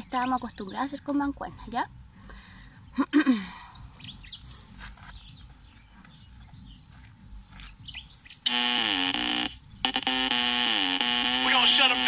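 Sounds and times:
birds chirping faintly: 0:00.0 - 0:12.0.

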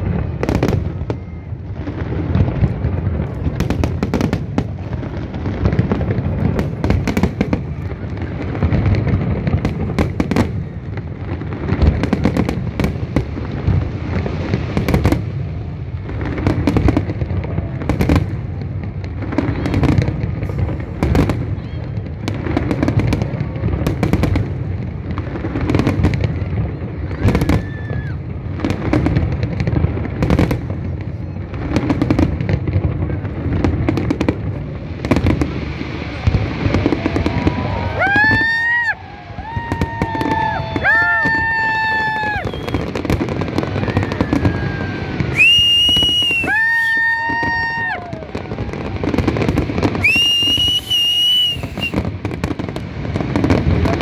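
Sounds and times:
firework bursts and bangs: 0:00.0 - 0:54.0.

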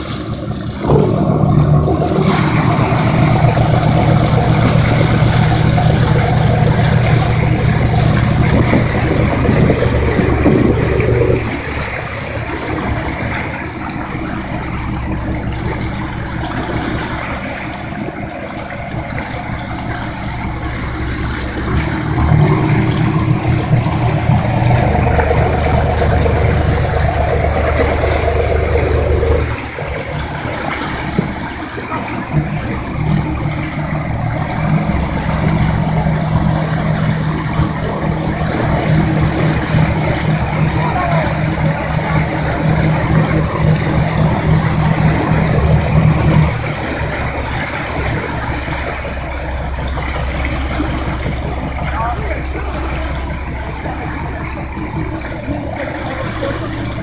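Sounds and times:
motorboat engine droning: 0:00.0 - 0:57.0
water rushing in wake: 0:00.0 - 0:57.0.

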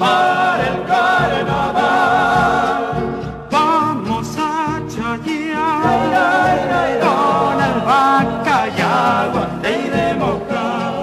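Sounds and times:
vocal group singing in harmony: 0:00.0 - 0:11.0.

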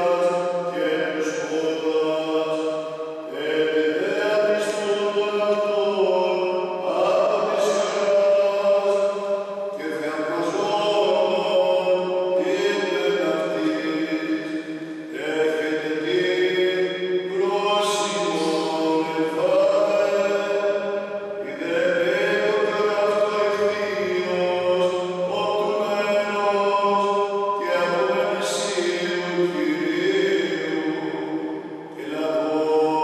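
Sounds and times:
priest chanting solo: 0:00.0 - 0:33.0.

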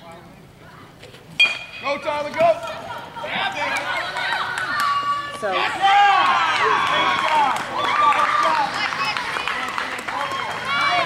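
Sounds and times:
metal bat striking ball: 0:01.4 - 0:02.1.

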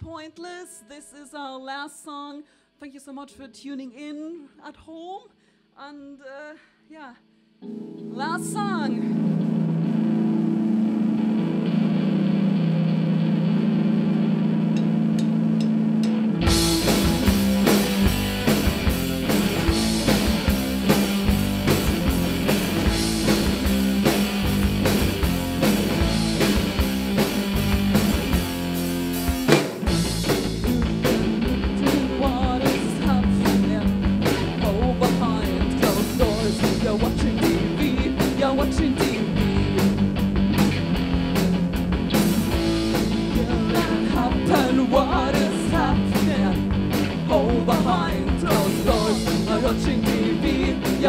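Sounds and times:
held electric guitar notes: 0:07.6 - 0:38.4
live rock band: 0:07.6 - 0:51.0
drum kit: 0:14.2 - 0:51.0.

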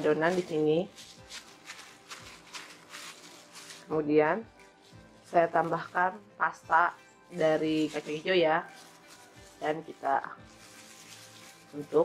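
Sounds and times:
faint background music: 0:00.0 - 0:12.0
plastic glove rustling: 0:00.0 - 0:12.0.

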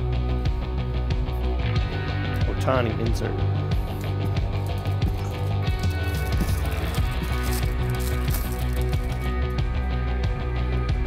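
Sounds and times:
rock music with steady beat: 0:00.0 - 0:11.0.

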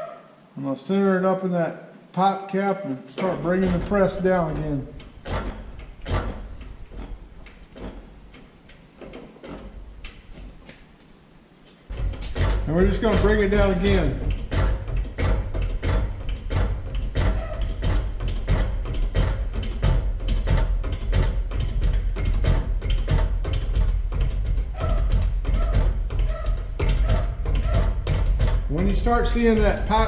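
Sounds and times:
hydraulic press clicks and knocks: 0:03.1 - 0:11.0, 0:11.9 - 0:30.0.

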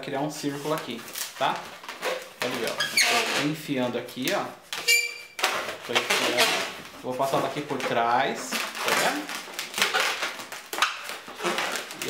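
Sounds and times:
balloons rubbing and squeaking: 0:00.3 - 0:03.8, 0:04.5 - 0:12.0.

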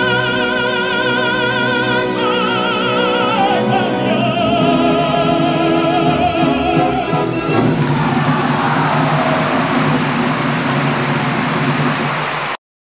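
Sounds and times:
orchestra playing: 0:02.2 - 0:12.5
audience applause: 0:07.4 - 0:12.6.

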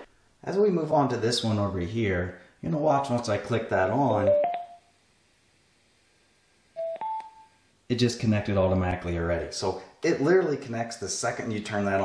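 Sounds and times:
two-note rising electronic beep: 0:04.3 - 0:04.8, 0:06.8 - 0:07.5.

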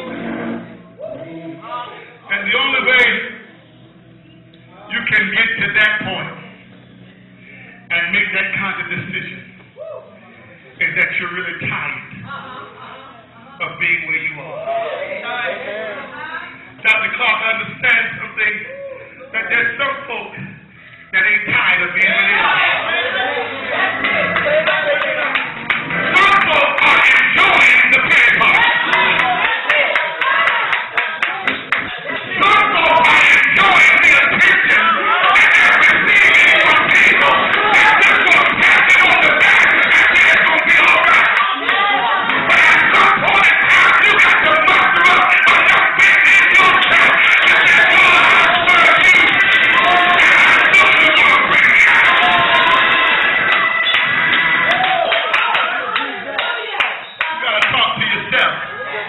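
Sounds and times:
voices calling out: 0:22.0 - 0:59.0
congregation clapping in rhythm: 0:24.0 - 0:58.5.

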